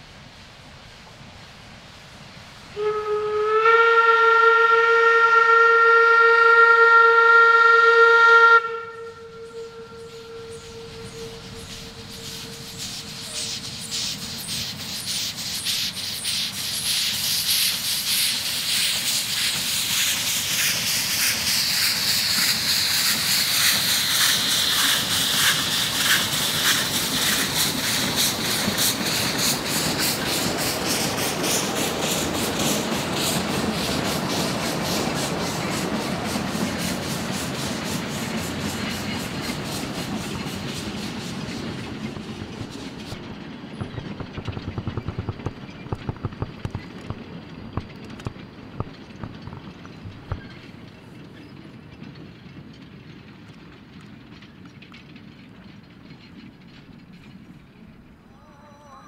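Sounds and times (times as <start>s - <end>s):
train wheels clattering on rail: 9.6s - 58.6s
wheel clacks: 21.9s - 58.2s.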